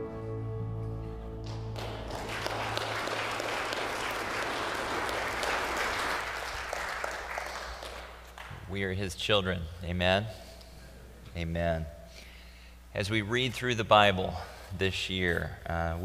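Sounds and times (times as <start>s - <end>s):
congregation applauding: 1.4s - 8.6s.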